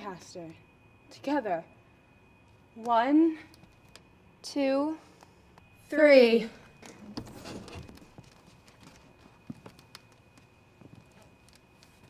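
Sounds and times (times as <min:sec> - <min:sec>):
faint high-pitched whine: 0:00.0 - 0:12.0
faint footsteps: 0:06.7 - 0:12.0.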